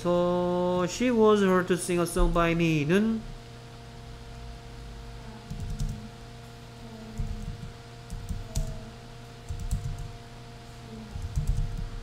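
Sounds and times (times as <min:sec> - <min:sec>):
faint steady hum: 0:00.0 - 0:12.0
typing on computer keyboard: 0:05.5 - 0:06.0, 0:07.2 - 0:08.8, 0:09.5 - 0:10.1, 0:11.2 - 0:11.9.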